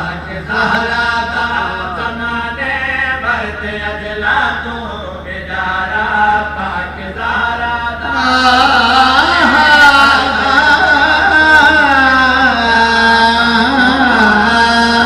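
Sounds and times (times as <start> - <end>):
man chanting into microphone: 0.0 - 15.0.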